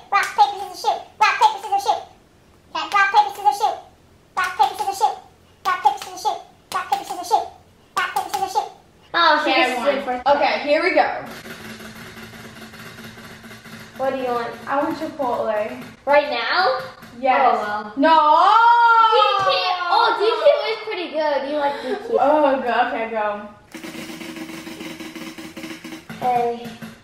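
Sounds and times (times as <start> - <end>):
prize wheel rattling: 11.3 - 17.4, 23.7 - 27.0
prize wheel pointer clicking: 23.7 - 26.1.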